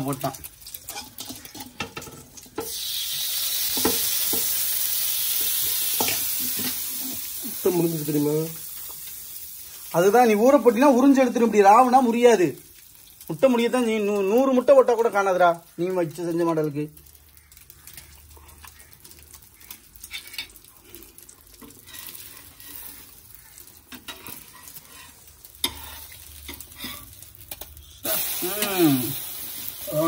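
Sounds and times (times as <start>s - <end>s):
man talking: 0.0s - 0.5s, 7.4s - 8.6s, 13.3s - 17.0s, 28.0s - 29.2s
bread sizzling on a pan: 0.0s - 30.0s
spatula scraping and tapping pan: 0.6s - 2.8s, 17.9s - 20.6s, 21.5s - 27.8s.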